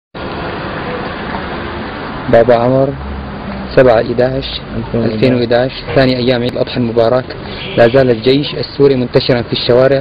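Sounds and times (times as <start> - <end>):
vehicle engines running: 0.2 - 10.0.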